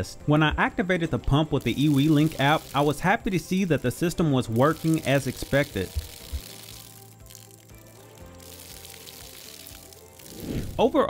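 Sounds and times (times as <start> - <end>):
background music with sustained notes: 0.0 - 11.0
water jetting and splashing on mulch: 0.6 - 11.0.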